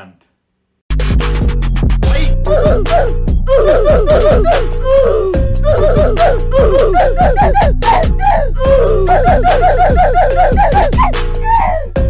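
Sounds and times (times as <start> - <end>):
low bass line music: 0.9 - 12.0
rapid laugh-like vocal sounds: 2.1 - 12.0.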